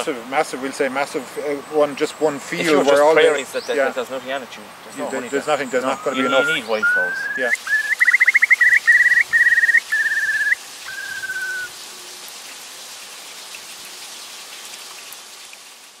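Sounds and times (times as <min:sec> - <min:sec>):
steady hiss: 0:00.0 - 0:16.0
bird whistling trills: 0:05.7 - 0:11.8.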